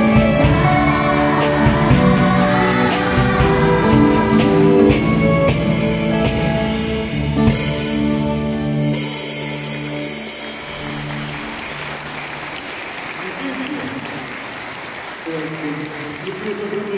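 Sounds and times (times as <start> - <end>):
audience applause: 9.7 - 16.9.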